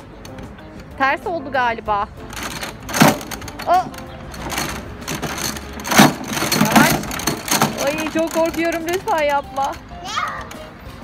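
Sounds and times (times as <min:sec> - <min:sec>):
swing chains rattling: 0:02.2 - 0:10.7
young child giggling and calling: 0:10.0 - 0:10.5.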